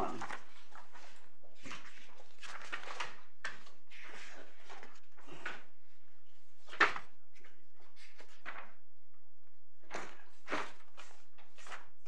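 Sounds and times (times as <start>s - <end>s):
paper rustling and pages turning: 0.0s - 8.8s, 9.8s - 12.0s.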